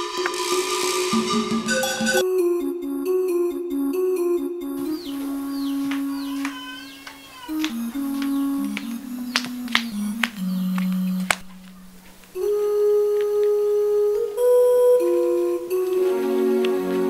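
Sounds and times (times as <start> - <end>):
film music slow held notes: 0.0 - 17.0.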